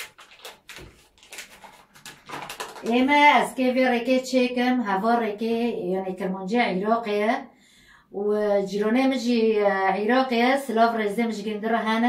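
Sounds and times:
packet crinkling: 0:00.0 - 0:03.4.

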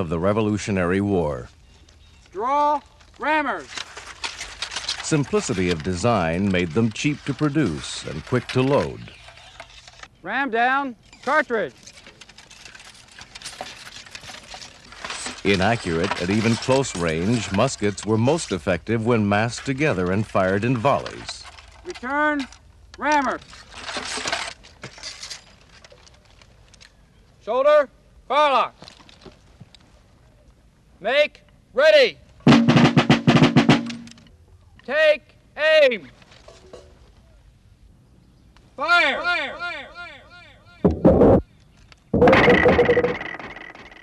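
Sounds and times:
ramrods scraping in musket barrels: 0:01.7 - 0:10.2, 0:10.9 - 0:27.2.

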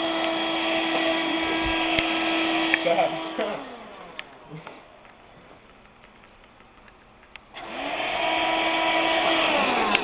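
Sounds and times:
vacuum cleaner whine: 0:00.0 - 0:05.0, 0:07.6 - 0:10.0.

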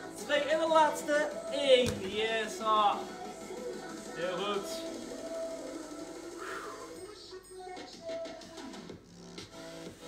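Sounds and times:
background music with held tones: 0:00.0 - 0:10.0
regular beat: 0:01.7 - 0:02.7.

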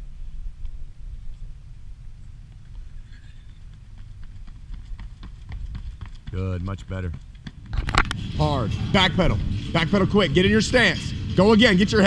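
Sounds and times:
wind rumble on microphone: 0:00.0 - 0:12.0
running footsteps on asphalt: 0:00.6 - 0:08.3.

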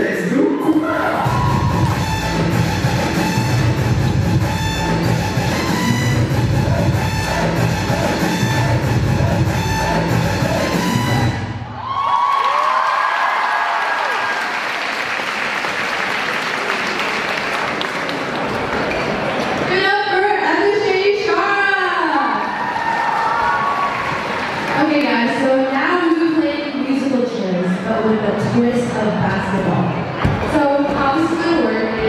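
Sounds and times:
loud dance music: 0:00.0 - 0:11.6
people whooping: 0:00.3 - 0:02.2, 0:06.6 - 0:15.0, 0:22.3 - 0:24.7
crowd cheering and applauding: 0:00.3 - 0:03.1, 0:11.7 - 0:19.7, 0:22.3 - 0:25.2.

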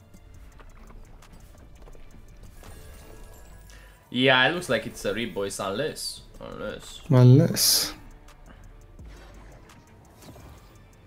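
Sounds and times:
low dark game music: 0:00.0 - 0:11.0.

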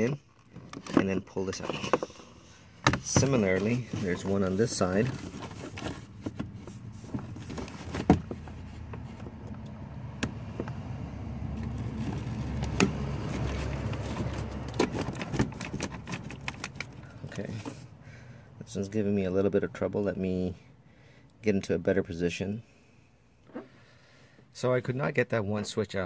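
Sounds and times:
low steady rumble: 0:02.2 - 0:20.9
plastic clicks and scraping: 0:11.5 - 0:17.8.

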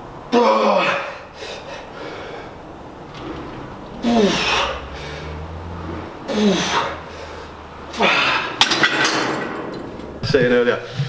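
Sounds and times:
weight stack clanking: 0:02.4 - 0:11.0.

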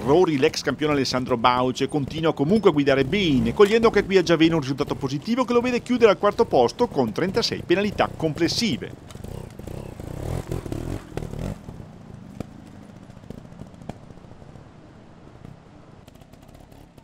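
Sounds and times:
motorcycle engine revving: 0:00.0 - 0:17.0.

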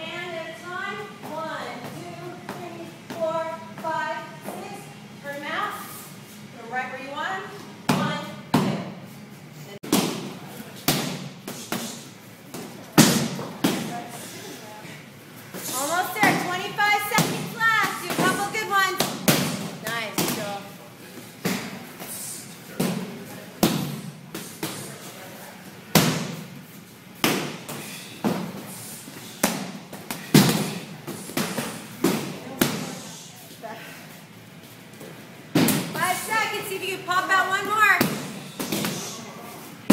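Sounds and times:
voices: 0:09.6 - 0:26.0, 0:30.2 - 0:39.9.

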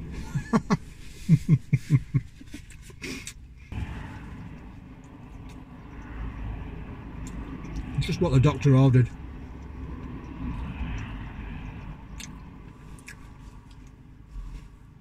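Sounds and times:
road traffic rumble: 0:00.0 - 0:15.0
man laughing: 0:00.2 - 0:02.6
car passing: 0:03.7 - 0:15.0.

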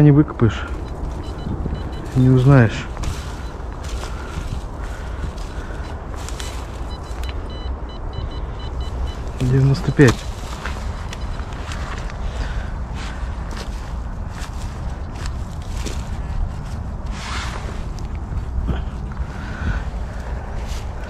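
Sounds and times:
digging in soil: 0:00.0 - 0:07.8, 0:08.9 - 0:19.5
leaves rustling: 0:00.0 - 0:07.8, 0:08.4 - 0:21.0.

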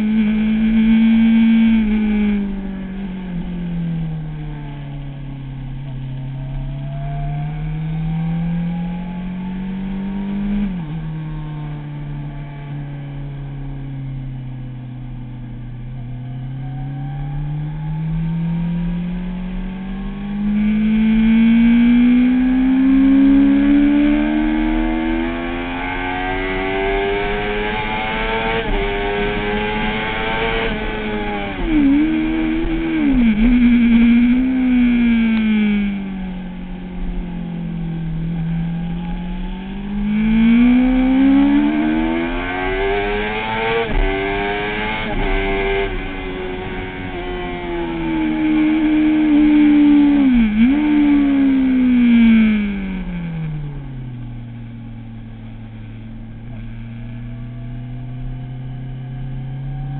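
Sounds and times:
motorcycle engine revving: 0:00.0 - 0:59.9.

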